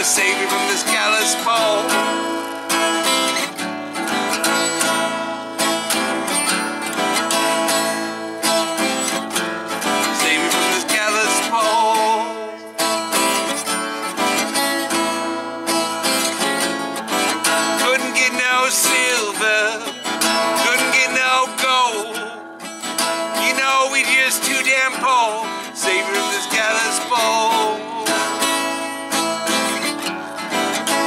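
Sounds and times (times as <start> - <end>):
acoustic guitar strumming: 0.0 - 31.0.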